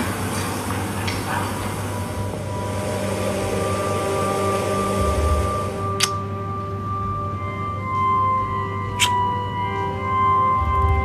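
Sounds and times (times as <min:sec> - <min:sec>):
low steady hum: 0:00.0 - 0:11.0
soft slow background music: 0:00.0 - 0:11.0
sharp click: 0:06.0 - 0:06.2.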